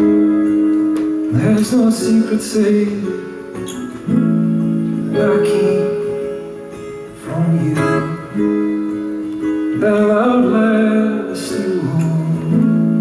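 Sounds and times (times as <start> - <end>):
acoustic guitar strumming: 0.0 - 13.0
man singing: 1.3 - 3.7, 5.0 - 13.0.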